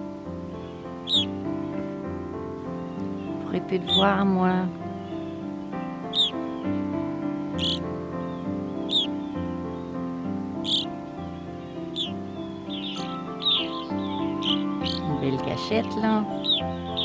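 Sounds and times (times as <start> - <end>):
slow instrumental music: 0.0 - 17.0
short sharp bird calls: 1.0 - 1.3, 6.1 - 6.8, 7.5 - 7.8, 8.8 - 9.3, 10.6 - 11.0, 11.8 - 15.1.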